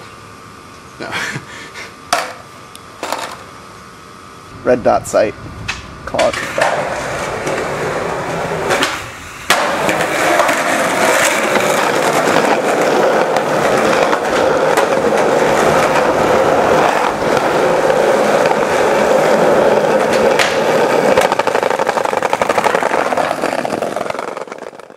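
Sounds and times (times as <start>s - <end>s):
skateboard wheels rolling on pavement: 2.1s - 3.6s, 5.5s - 24.9s.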